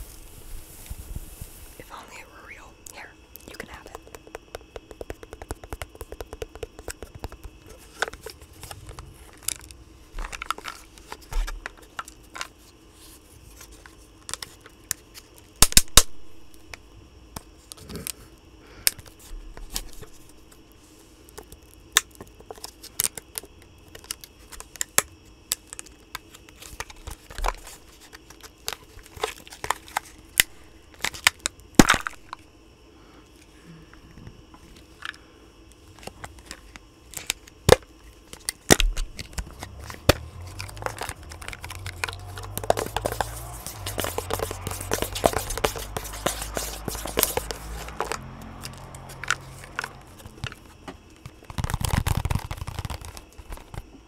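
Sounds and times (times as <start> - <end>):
packaging crackling and crinkling: 3.8 - 12.6, 36.0 - 50.6, 51.2 - 53.9
low handling rumble: 8.2 - 10.5, 39.0 - 50.8
packaging clicks and snaps: 36.0 - 53.9.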